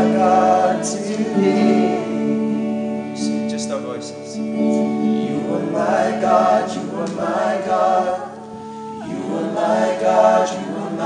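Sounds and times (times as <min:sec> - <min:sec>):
group of voices singing: 0:00.0 - 0:03.5, 0:04.4 - 0:11.0.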